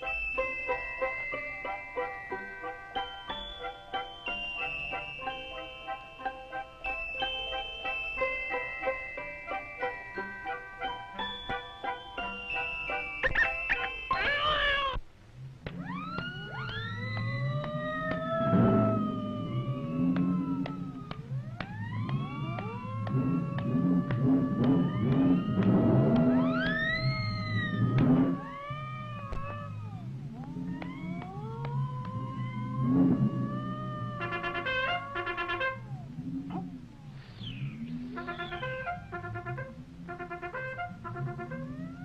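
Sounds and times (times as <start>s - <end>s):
cartoon soundtrack music: 0.0s - 15.0s, 15.7s - 36.8s, 37.6s - 42.0s
wavering cat-like yowl: 14.1s - 15.0s, 17.4s - 21.2s, 26.3s - 36.8s
sliding tones: 15.6s - 42.0s.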